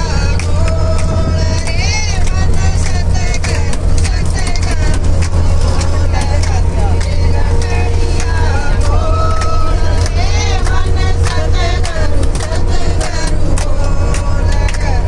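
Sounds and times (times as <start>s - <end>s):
bus engine drone: 0.0s - 15.0s
people clapping: 0.0s - 15.0s
women singing together: 0.0s - 15.0s.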